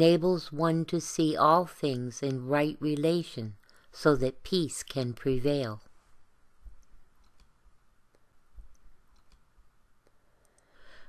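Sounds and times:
faint clicks: 6.7 - 10.7.

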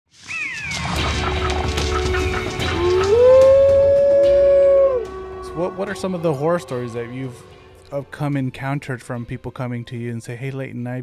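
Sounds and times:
animal call falling in pitch: 0.2 - 7.5
low steady drone music: 1.0 - 10.1.

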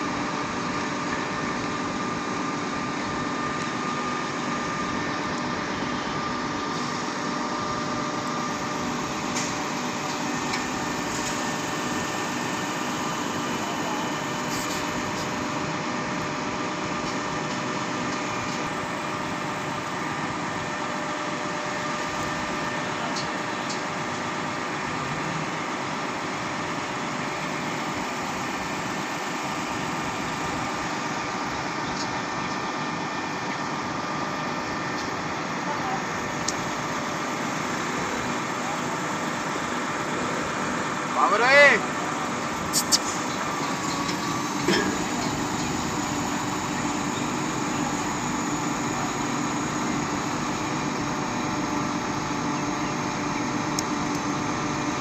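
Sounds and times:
truck engine running steadily: 0.0 - 55.0.

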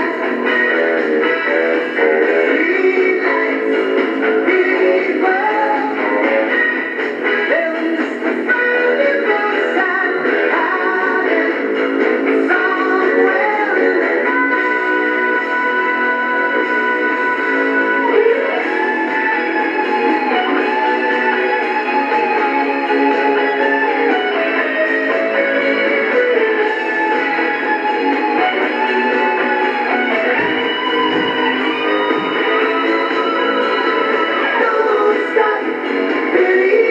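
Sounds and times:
music from small radio speaker: 0.0 - 36.9.

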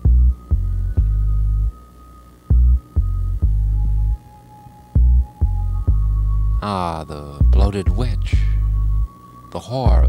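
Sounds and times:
buzzing bass pulses: 0.0 - 1.8, 2.5 - 4.2, 5.0 - 6.6.

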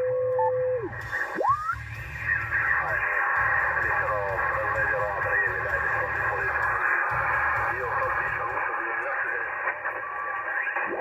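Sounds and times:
garbled radio voices: 0.8 - 11.0
radio band noise hiss: 0.8 - 11.0.

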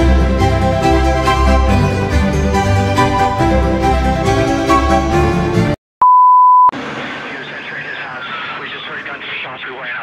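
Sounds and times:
high test-tone beep: 6.0 - 6.7
tv static: 7.0 - 10.0.

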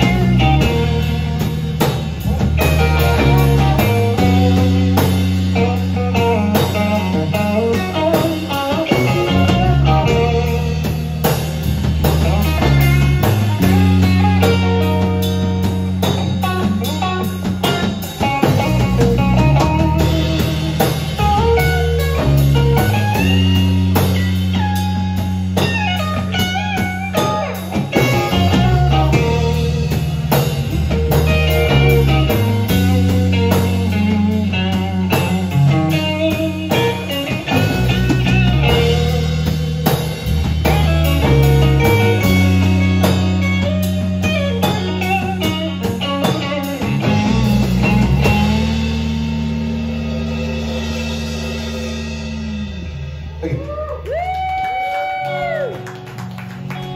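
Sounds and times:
lead guitar bending notes: 0.0 - 53.6
live rock band instrumental: 0.0 - 56.9.

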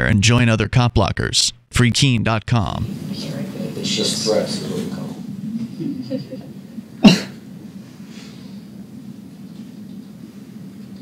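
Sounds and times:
person coughing: 7.0 - 7.5.

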